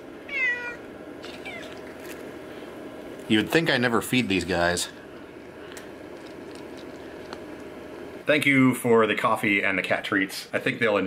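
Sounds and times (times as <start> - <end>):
cats chewing treats: 1.2 - 2.7, 5.4 - 7.7.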